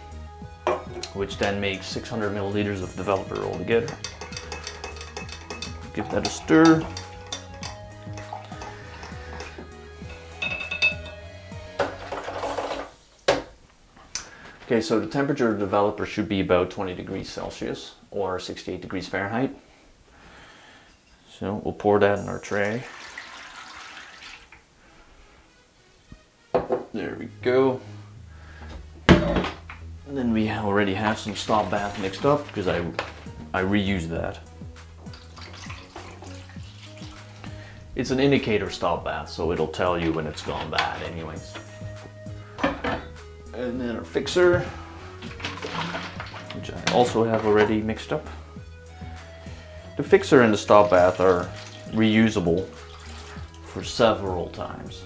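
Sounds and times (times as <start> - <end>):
soft background music: 0.0 - 13.7, 14.3 - 19.7, 20.6 - 55.0
rod clinking against glass beaker: 3.1 - 11.2
liquid pouring into a tray: 22.6 - 24.6, 35.1 - 37.4, 52.6 - 53.5.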